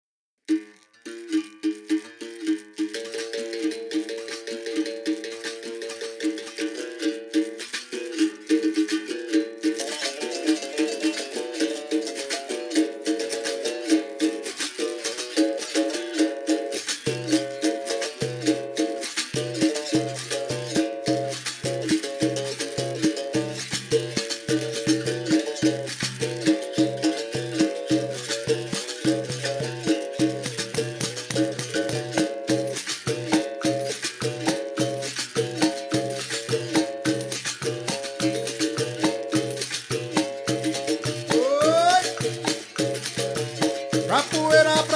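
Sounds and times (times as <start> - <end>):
berimbau rhythm: 0.5 - 44.9
rattling shaker: 0.5 - 44.9.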